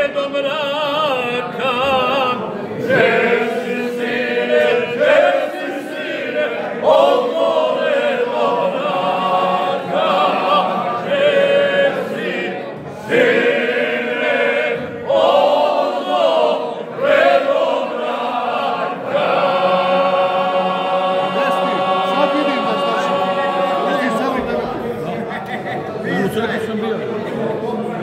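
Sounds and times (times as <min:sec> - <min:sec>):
men singing a cappella in harmony: 0:00.0 - 0:24.8.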